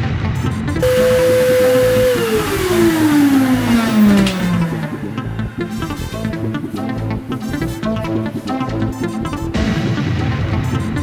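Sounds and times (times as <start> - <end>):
background music: 0.0 - 11.0
power drill motor whine: 0.8 - 5.1.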